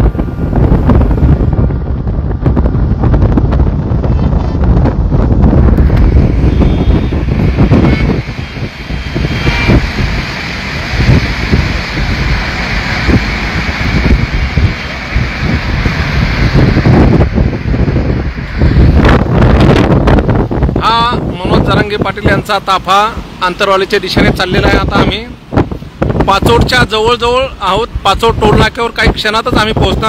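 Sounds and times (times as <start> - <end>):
low rumble of vehicles: 0.0 - 30.0
wind buffeting microphone: 0.0 - 30.0.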